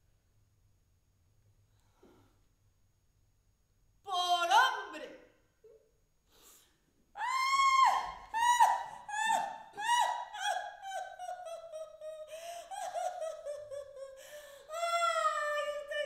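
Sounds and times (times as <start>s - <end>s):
woman's high-pitched cries: 7.2s - 16.0s
woman's quavering wail: 7.2s - 16.0s.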